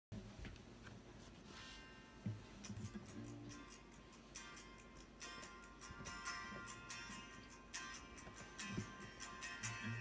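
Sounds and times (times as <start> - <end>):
light acoustic guitar strums: 2.3 - 10.0.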